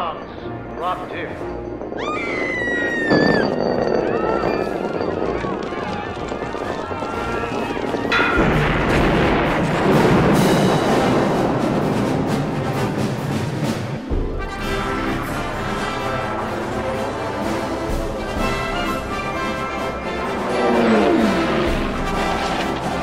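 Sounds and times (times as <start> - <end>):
blast rumble: 0.7 - 14.1
people screaming and shouting: 1.9 - 8.4
orchestral score: 4.4 - 23.0
large explosion: 7.8 - 13.8.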